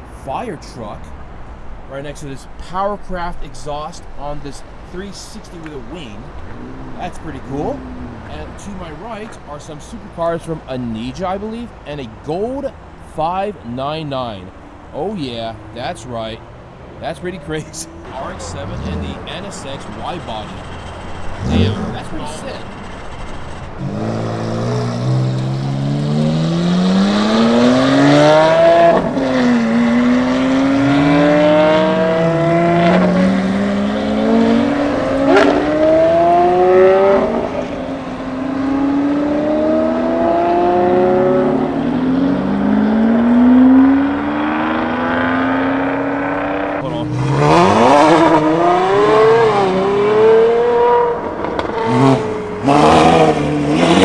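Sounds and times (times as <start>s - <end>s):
sports car engines revving: 0.0s - 54.0s
engine crackles: 17.0s - 40.2s.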